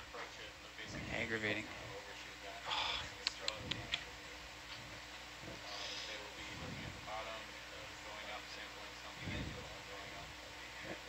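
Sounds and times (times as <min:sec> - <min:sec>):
faint indistinct voices: 0:00.0 - 0:11.0
steady electrical hum: 0:00.0 - 0:11.0.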